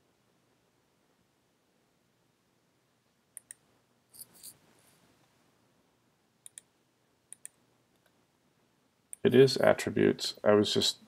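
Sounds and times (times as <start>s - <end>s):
computer mouse clicks: 3.3s - 3.6s, 6.4s - 6.7s, 7.3s - 8.2s.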